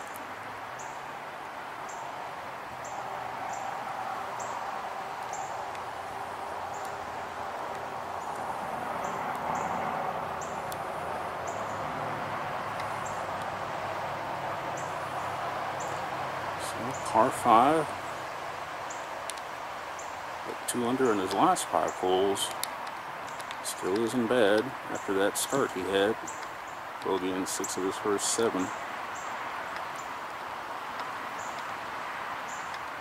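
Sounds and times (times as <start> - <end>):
outdoor background noise: 0.0 - 33.0.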